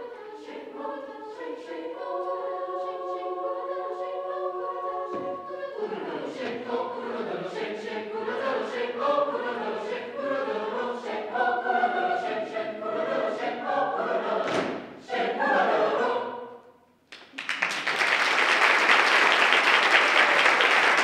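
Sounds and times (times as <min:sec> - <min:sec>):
chamber choir singing: 0:00.0 - 0:16.8.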